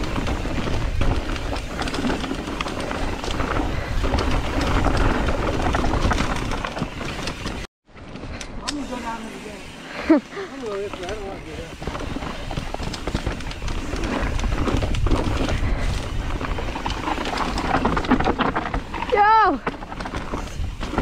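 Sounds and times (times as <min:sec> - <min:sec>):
bike rattling: 0:00.0 - 0:21.0
bike tyres rolling over dirt: 0:00.0 - 0:21.0.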